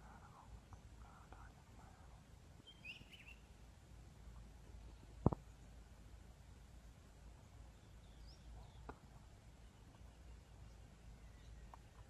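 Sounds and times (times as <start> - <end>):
faint soft voices: 0.0 - 2.4
high bird chirp: 2.6 - 3.5.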